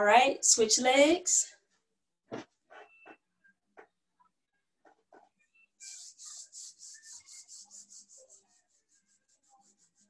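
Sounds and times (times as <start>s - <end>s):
palms rubbing together: 5.1s - 10.0s.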